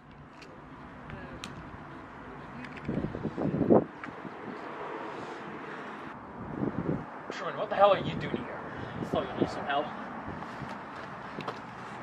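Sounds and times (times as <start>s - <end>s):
wind noise on microphone: 2.5s - 12.0s.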